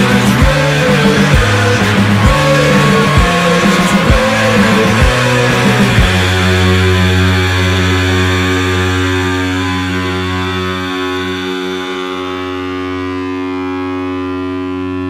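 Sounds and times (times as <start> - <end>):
distorted rock chord drone: 0.0 - 15.0.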